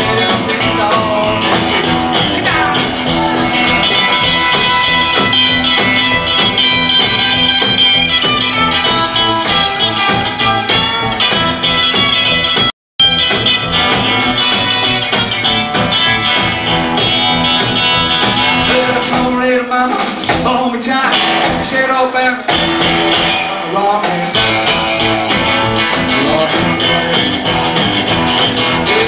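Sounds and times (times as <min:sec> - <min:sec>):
man singing: 0:00.0 - 0:04.3, 0:18.3 - 0:22.7, 0:23.4 - 0:27.8, 0:28.7 - 0:29.0
drum beat: 0:00.0 - 0:21.8, 0:22.5 - 0:29.0
electric guitar: 0:00.0 - 0:29.0.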